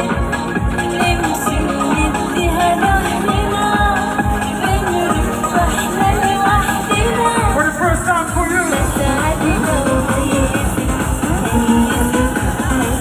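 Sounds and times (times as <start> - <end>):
kick drum beat: 0.0 - 13.0
loud dance music: 0.0 - 13.0
sung vocal line: 0.0 - 13.0.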